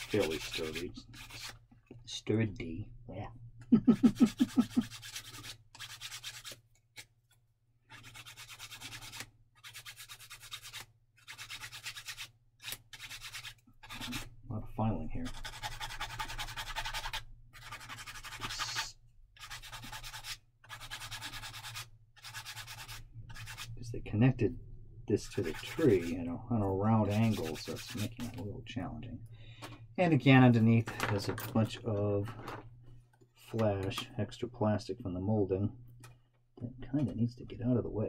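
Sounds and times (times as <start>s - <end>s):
hand-sanding plastic part: 0.0s - 1.6s, 4.0s - 7.1s, 7.9s - 14.4s, 15.2s - 23.7s, 25.2s - 26.3s, 26.9s - 28.5s.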